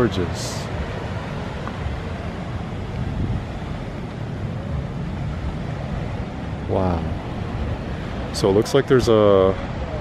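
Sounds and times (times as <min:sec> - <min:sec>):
distant surf: 0:00.0 - 0:10.0
wind rumbling on microphone: 0:00.0 - 0:10.0.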